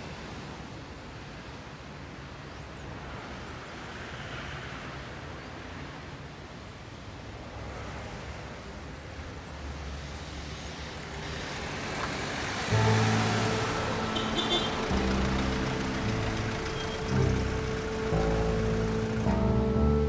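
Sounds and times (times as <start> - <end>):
car approaching: 10.9 - 20.0
music of held notes: 12.7 - 20.0.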